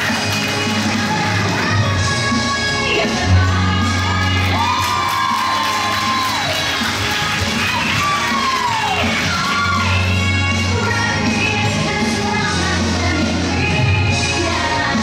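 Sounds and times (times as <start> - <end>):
music playing: 0.0 - 15.0
crowd cheering and whooping: 4.0 - 10.3.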